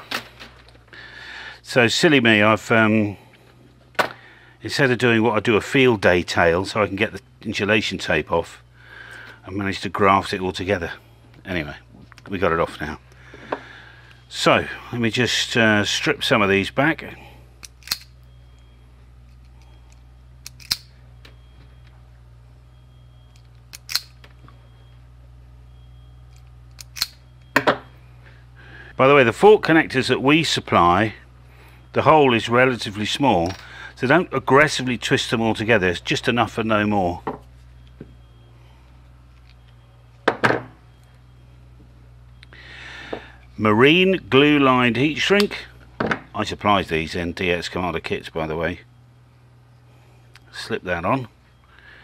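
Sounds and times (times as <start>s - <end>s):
steady low hum: 0.0s - 52.0s
pliers clacking: 17.6s - 18.1s, 19.3s - 20.9s, 23.3s - 24.2s, 26.3s - 27.2s
wire strippers snapping shut: 17.6s - 18.1s, 20.4s - 20.9s, 23.7s - 24.3s, 26.7s - 27.8s.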